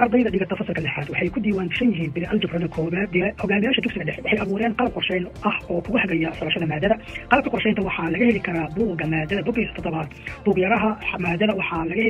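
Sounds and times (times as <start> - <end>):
person narrating: 0.0 - 12.0.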